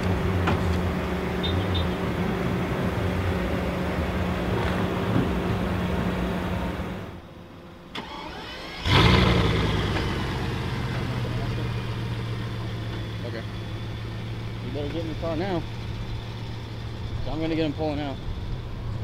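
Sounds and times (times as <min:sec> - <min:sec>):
car engine starting and idling: 0:00.0 - 0:19.0.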